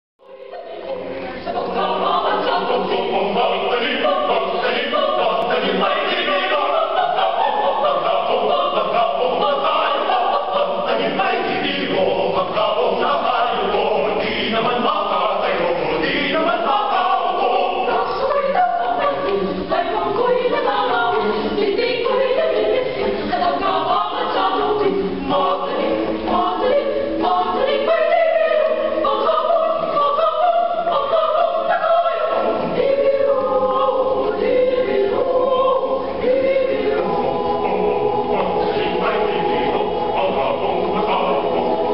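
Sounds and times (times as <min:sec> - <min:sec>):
mixed choir singing a cappella: 0:00.2 - 0:41.9.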